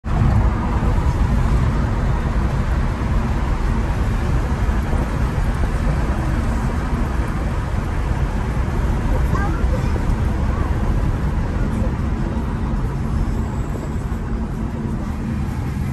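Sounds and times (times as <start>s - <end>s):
car cabin road noise: 0.0s - 15.9s.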